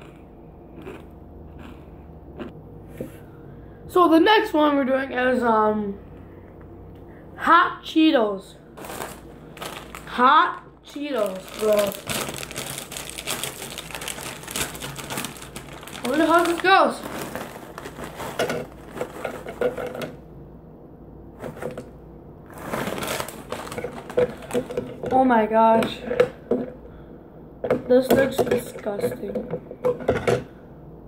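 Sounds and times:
plastic chip bag crinkling: 8.8 - 20.1, 22.5 - 25.2.

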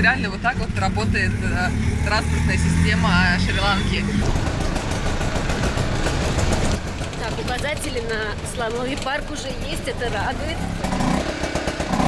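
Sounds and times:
auto rickshaw engine running: 0.0 - 12.0
road noise: 0.0 - 12.0.

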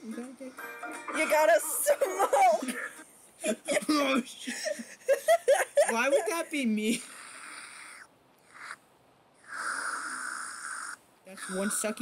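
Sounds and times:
breathy sucking noise: 9.4 - 11.0.

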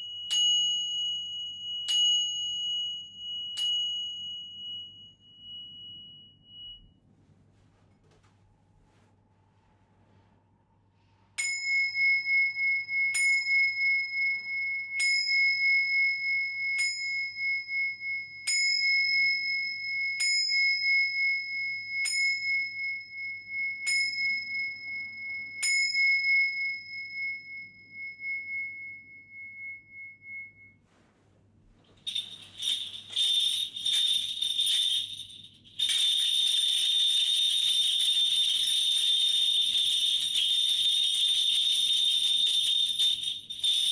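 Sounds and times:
bell tree jingling: 32.0 - 43.9.

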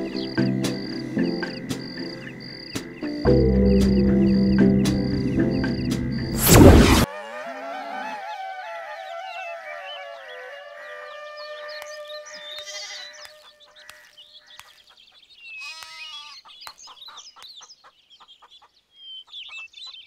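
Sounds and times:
small birds chirping: 0.0 - 6.4, 9.0 - 20.0
held music note: 3.1 - 7.1
farm animal call: 7.1 - 14.8, 15.5 - 17.2.

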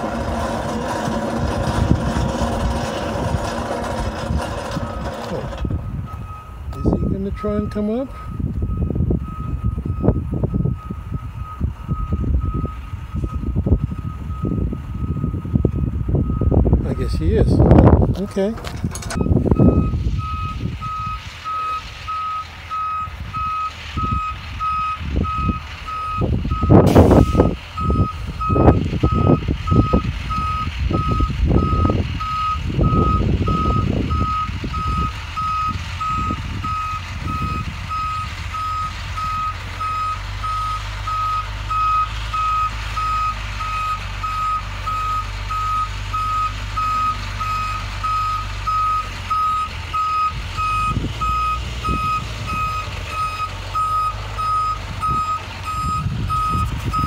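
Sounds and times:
truck engine running: 0.0 - 57.0
truck reversing alarm beeps: 4.3 - 18.0, 19.0 - 57.0.

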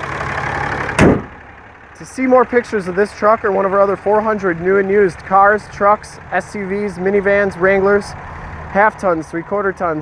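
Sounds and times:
diesel engine idling: 0.0 - 10.0
hood slammed shut: 0.9 - 1.5.

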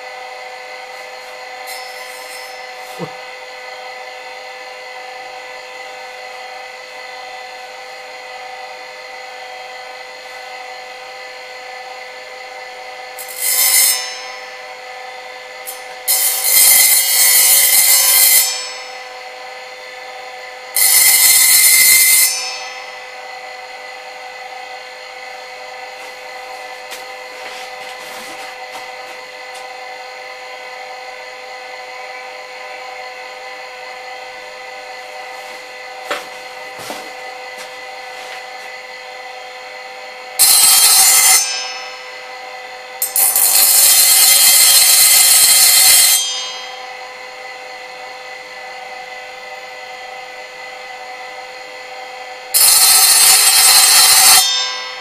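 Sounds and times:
steel blade grinding on disc: 0.0 - 6.5, 11.7 - 31.3, 33.9 - 49.6, 52.5 - 55.0
power hone motor whine: 0.0 - 55.0.

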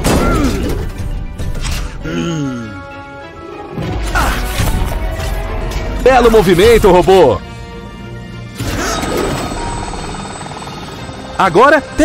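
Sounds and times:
cartoon helicopter rotor whir: 9.5 - 11.3.

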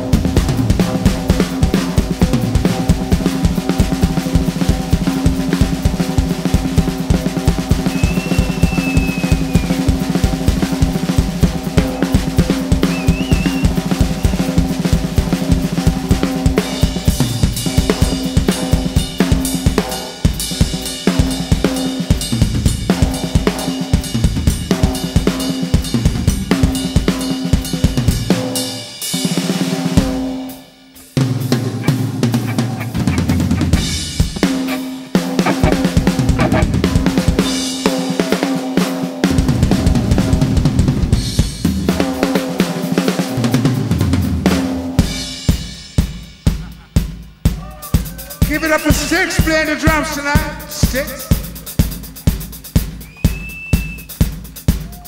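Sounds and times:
drum kit played hard: 0.0 - 55.0
rock band playing: 0.0 - 55.0.

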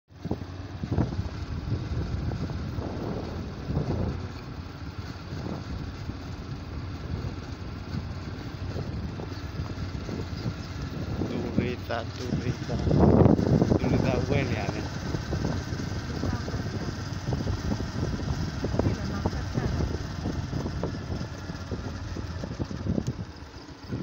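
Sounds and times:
scooter engine rumbling: 0.2 - 24.0
wind rushing past microphone: 0.2 - 24.0.

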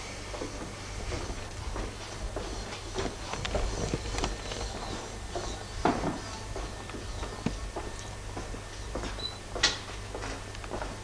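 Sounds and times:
steady low hum: 0.0 - 11.0
footsteps on hard floor: 0.3 - 11.0.

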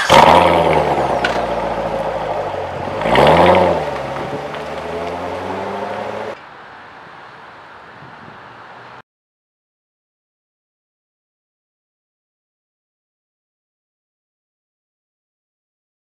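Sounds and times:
car engine revving: 0.0 - 6.4.

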